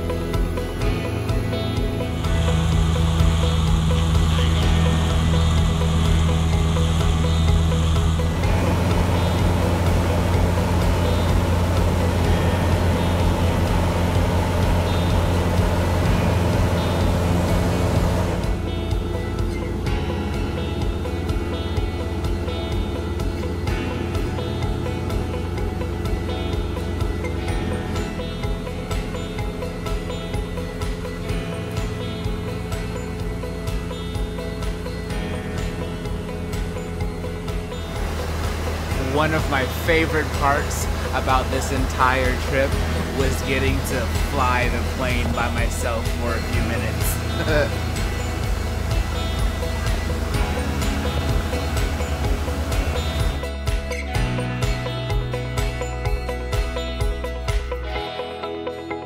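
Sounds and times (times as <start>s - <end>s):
background music: 0.0s - 59.0s
light aircraft engine drone: 0.0s - 59.0s.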